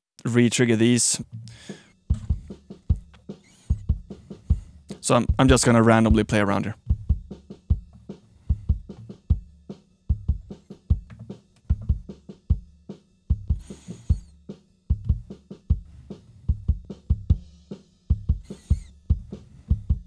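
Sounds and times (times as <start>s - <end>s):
bass line: 1.2s - 9.5s
drum kit steady beat: 1.3s - 20.0s.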